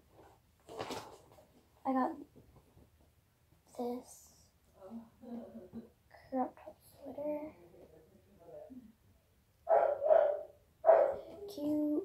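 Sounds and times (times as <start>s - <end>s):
dog barking: 9.7s - 11.3s.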